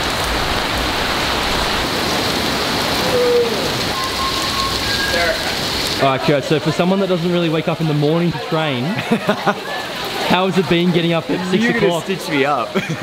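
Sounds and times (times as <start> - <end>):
rain splashing on hard surfaces: 0.0 - 13.0.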